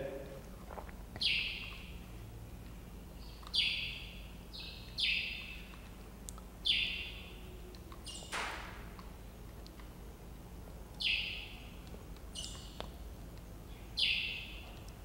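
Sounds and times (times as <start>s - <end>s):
bird chirping: 1.2s - 6.0s, 6.6s - 8.6s, 11.0s - 15.0s.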